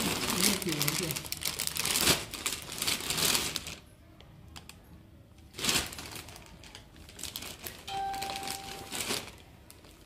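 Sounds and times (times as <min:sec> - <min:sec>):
plastic packaging crinkling: 0:00.0 - 0:03.9, 0:05.5 - 0:10.0.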